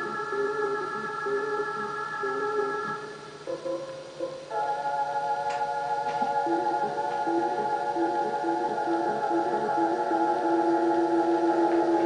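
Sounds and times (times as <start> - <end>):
background film music: 0.0 - 12.0.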